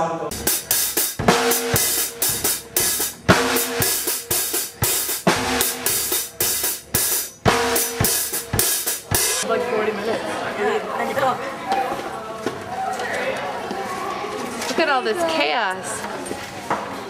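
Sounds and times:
ringing cymbals: 0:00.3 - 0:09.4
snare and drum hits: 0:00.3 - 0:09.4.

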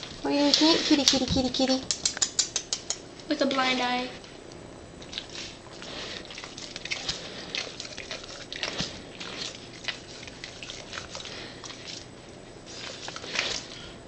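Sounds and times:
dog licking: 0:05.0 - 0:13.8.

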